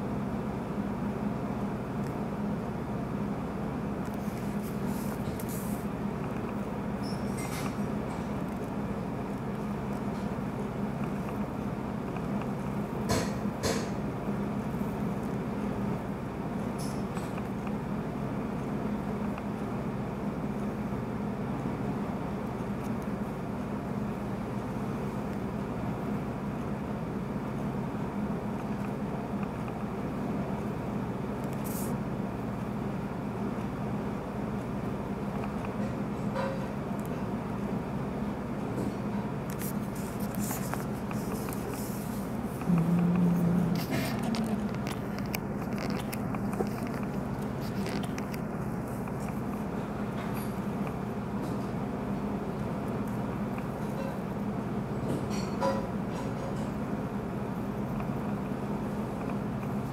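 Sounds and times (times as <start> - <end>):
air conditioner humming: 0.0 - 59.9.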